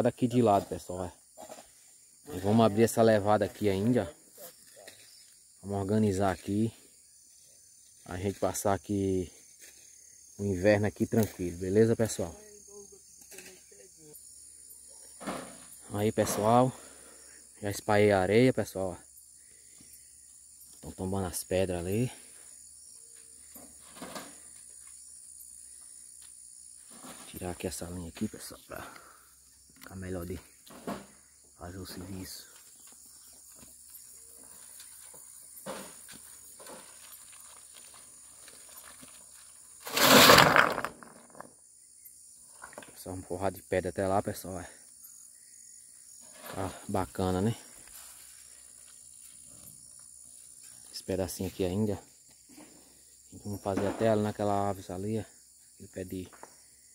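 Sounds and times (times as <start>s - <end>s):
insects droning: 0.0s - 56.9s
wheelbarrow scraping: 15.1s - 16.8s, 23.6s - 24.6s, 26.8s - 27.8s, 34.4s - 41.5s, 46.2s - 47.2s
rocks clattering onto dirt: 34.9s - 41.5s.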